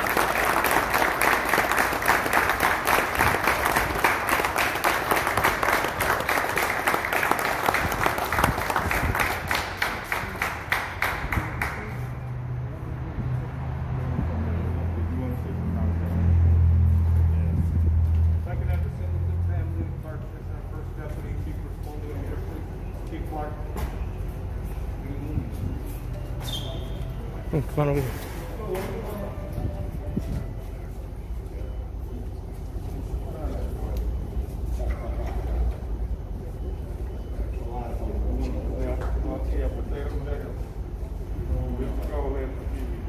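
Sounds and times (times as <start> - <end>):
faint crowd chatter: 0.0 - 43.0
vehicle engine idling: 0.0 - 43.0.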